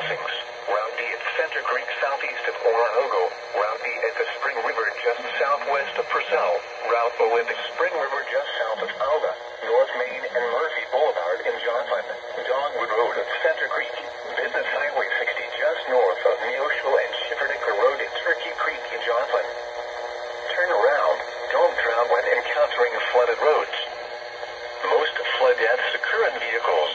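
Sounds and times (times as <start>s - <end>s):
broadcast voice through small speaker: 0.0s - 19.5s, 20.4s - 23.9s, 24.8s - 26.9s.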